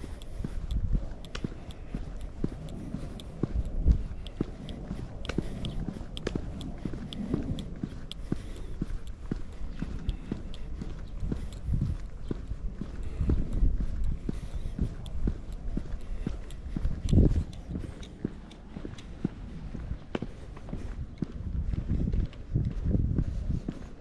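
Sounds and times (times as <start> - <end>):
footsteps on asphalt: 0.0 - 24.0.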